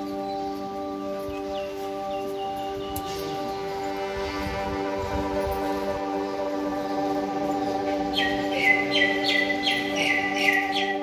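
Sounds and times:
ambient drone music: 0.0s - 11.0s
bird chirping: 0.0s - 11.0s.

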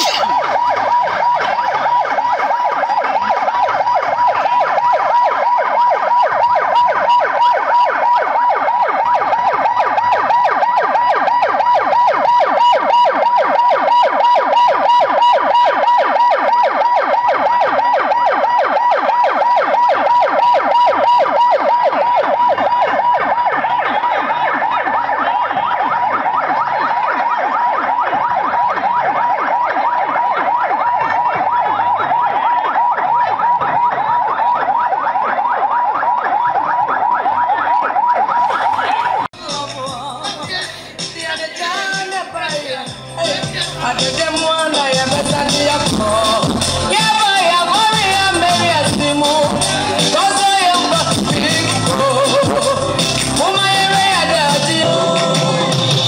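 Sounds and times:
electronic siren warbling: 0.0s - 39.3s, 43.9s - 56.0s.

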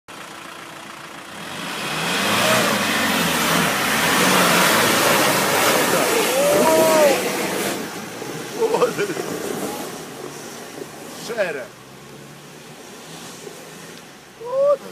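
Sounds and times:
off-road vehicle engine revving: 0.2s - 14.9s
tyres churning mud: 1.4s - 14.9s
person calling out: 5.8s - 7.4s, 14.4s - 14.9s.

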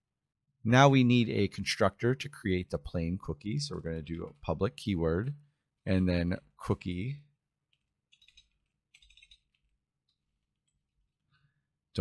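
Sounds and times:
computer keyboard keystrokes: 7.7s - 9.8s.

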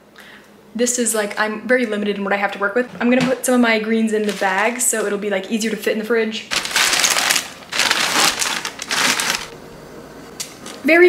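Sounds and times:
plastic bag crinkling: 4.2s - 5.1s, 6.5s - 9.6s
leaves rustling: 6.5s - 9.6s.

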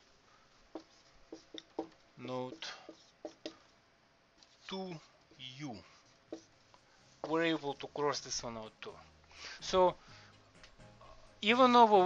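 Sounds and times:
marker stroke on whiteboard: 0.7s - 3.6s, 4.4s - 7.5s.

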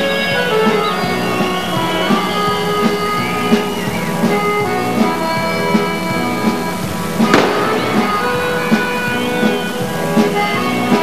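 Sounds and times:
music with steady beat: 0.0s - 11.0s
pyrotechnic bang: 7.2s - 9.6s.

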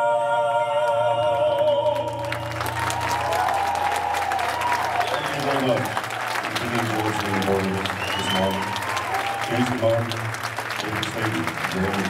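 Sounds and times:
audience applause: 1.9s - 12.0s.

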